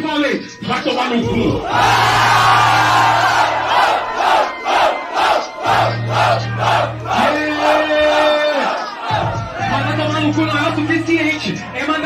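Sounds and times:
crowd cheering and yelling: 0:01.5 - 0:12.0
crowd shouting in rhythm: 0:01.6 - 0:09.9.

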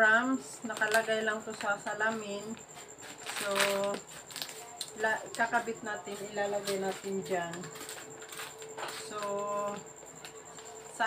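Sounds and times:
plastic snack packet crinkling: 0:03.1 - 0:05.0, 0:06.6 - 0:09.2.

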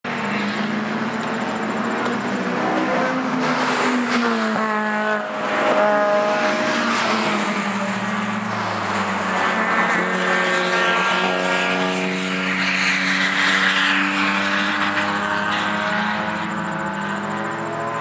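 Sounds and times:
race car engines passing: 0:00.1 - 0:18.0.

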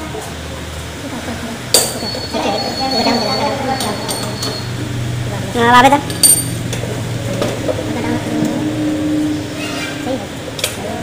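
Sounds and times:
metallic squeal: 0:02.0 - 0:04.9, 0:07.8 - 0:10.6
metal scraping: 0:06.4 - 0:10.6.

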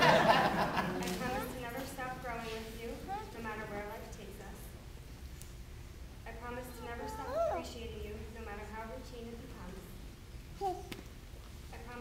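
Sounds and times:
woman speaking: 0:01.1 - 0:04.8, 0:06.3 - 0:10.0.

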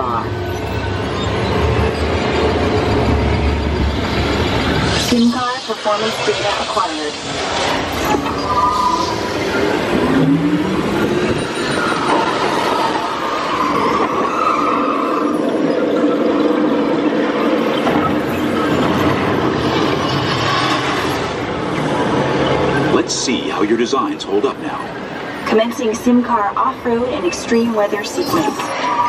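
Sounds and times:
ride vehicle running on track: 0:00.0 - 0:29.0.

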